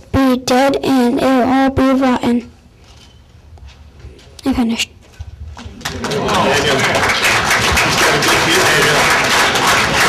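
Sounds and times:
audience applauding: 0:05.8 - 0:10.0.

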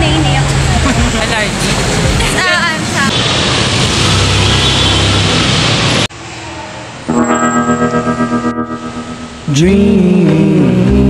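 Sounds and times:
rushing noise: 0:01.0 - 0:09.6.

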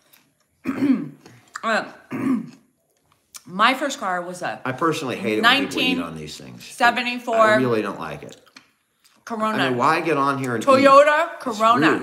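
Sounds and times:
person clearing throat: 0:00.6 - 0:01.2, 0:02.1 - 0:02.6.

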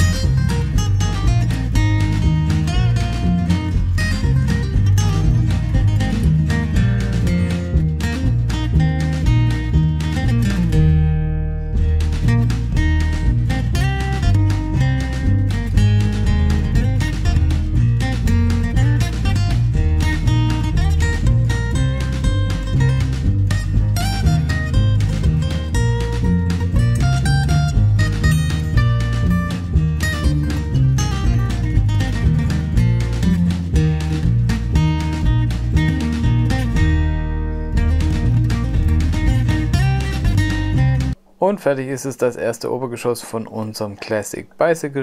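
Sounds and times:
acoustic guitar strumming: 0:00.0 - 0:41.2
bass line with steady beat: 0:00.0 - 0:41.2.

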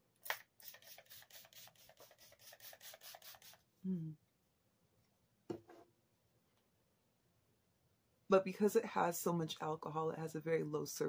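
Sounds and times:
spray bottle hissing sprays: 0:00.2 - 0:03.7.

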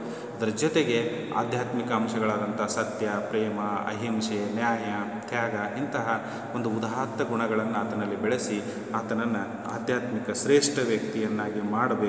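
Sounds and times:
man lecturing: 0:00.0 - 0:12.0.

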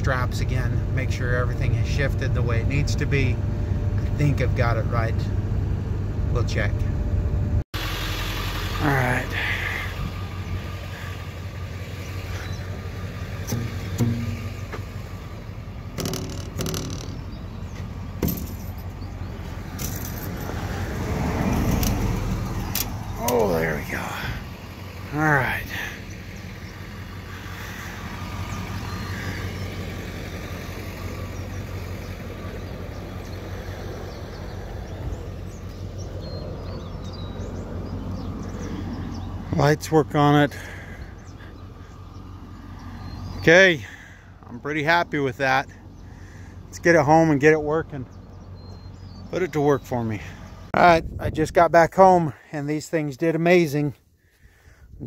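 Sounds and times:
truck engine idling: 0:00.0 - 0:50.9
outdoor noise: 0:00.0 - 0:55.0.

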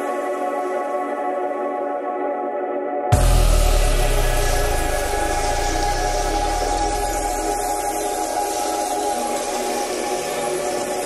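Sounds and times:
steady hiss: 0:03.2 - 0:11.0.

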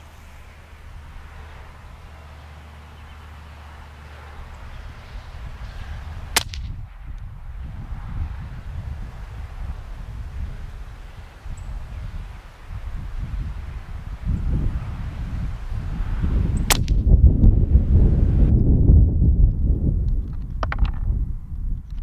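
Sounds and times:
wind on microphone: 0:00.0 - 0:22.0
suppressed rifle shot: 0:06.3 - 0:07.0.

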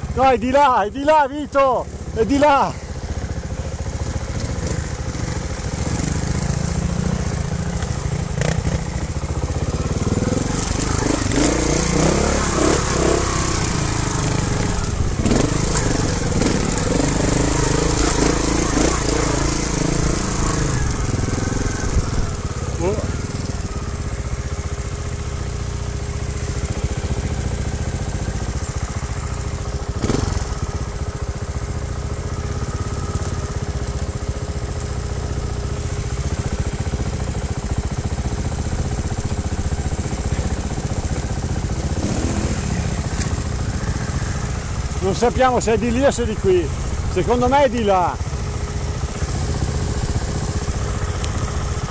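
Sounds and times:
motorcycle engine revving and idling: 0:00.0 - 0:51.9.

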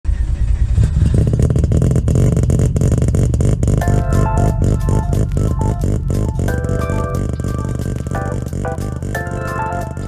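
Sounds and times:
racing car engine pulsing: 0:00.1 - 0:10.0
piano music: 0:03.8 - 0:10.0.

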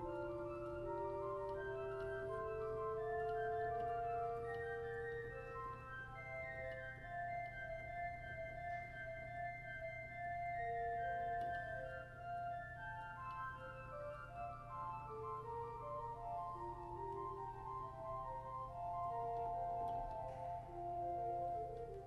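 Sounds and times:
pipe organ playing slow piece: 0:00.0 - 0:22.0.

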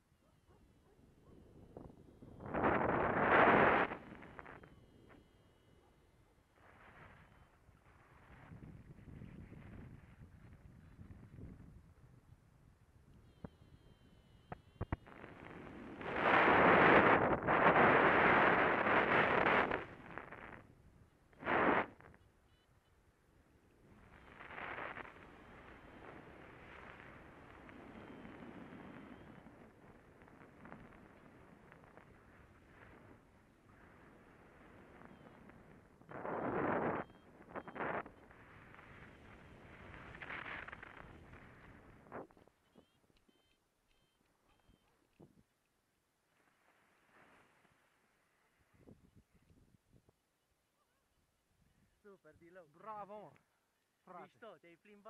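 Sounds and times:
wind rushing over microphone: 0:01.6 - 0:04.6, 0:15.0 - 0:20.7, 0:21.4 - 0:22.1, 0:23.9 - 0:42.4
faint ticks: 0:13.1 - 0:15.1, 0:42.6 - 0:45.8.

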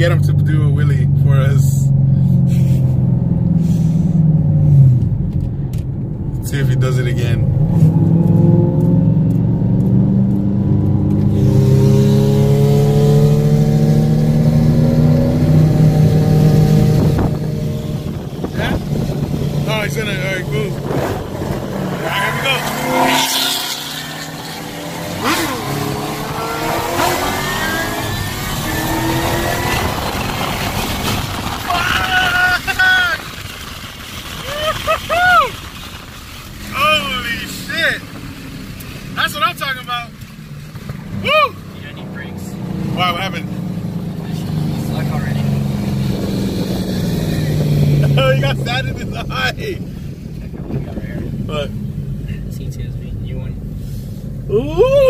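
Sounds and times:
car engine accelerating: 0:00.0 - 0:55.0
short rising and falling sounds: 0:20.7 - 0:37.7.

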